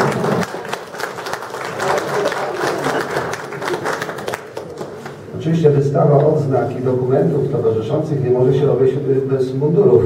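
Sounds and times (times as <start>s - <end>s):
audience applause: 0.0s - 5.2s.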